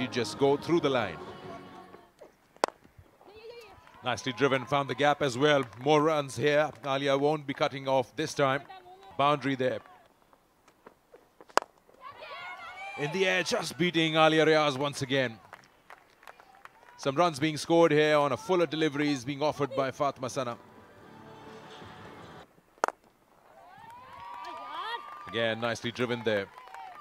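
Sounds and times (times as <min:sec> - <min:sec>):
voices calling: 0:12.0 - 0:15.2
cricket bat striking ball: 0:22.8 - 0:23.0.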